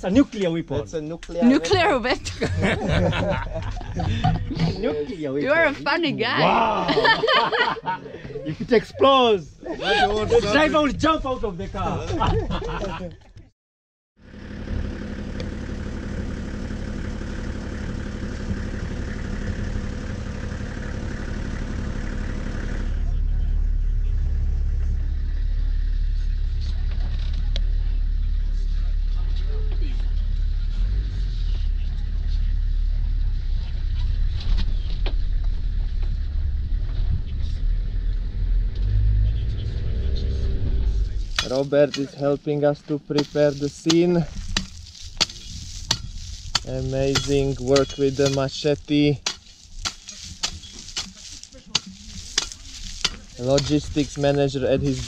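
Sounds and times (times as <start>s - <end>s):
vehicle engine humming: 0.0s - 12.2s, 14.2s - 55.0s
low rumble with rattles and knocks: 1.8s - 4.9s, 10.7s - 12.8s, 14.6s - 55.0s.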